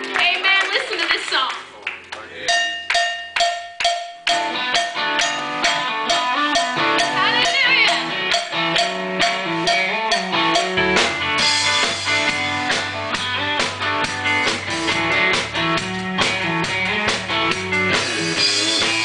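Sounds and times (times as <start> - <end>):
drum kit: 0.0 - 19.0
bass line: 1.6 - 19.0
keyboard playing: 1.6 - 19.0
electric guitar: 3.8 - 19.0.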